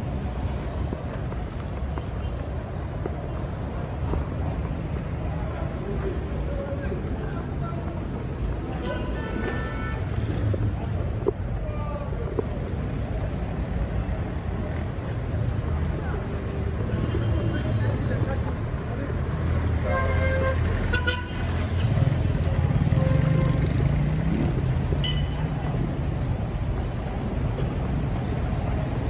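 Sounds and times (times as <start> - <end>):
vehicle engines rumbling: 0.0 - 29.0.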